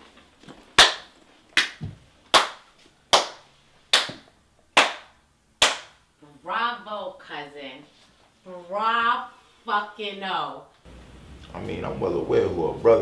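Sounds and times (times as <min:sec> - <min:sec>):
person clapping slowly: 0:00.8 - 0:04.2.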